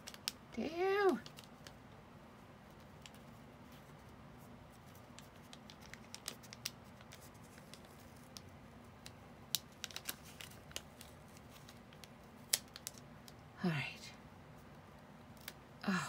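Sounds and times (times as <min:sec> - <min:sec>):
paper sticker clicks and crinkles: 0:00.0 - 0:01.8, 0:04.7 - 0:13.4.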